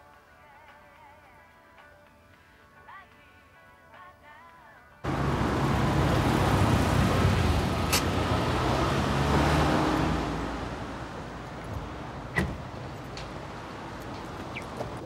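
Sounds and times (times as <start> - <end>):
car driving by: 5.1 - 15.0.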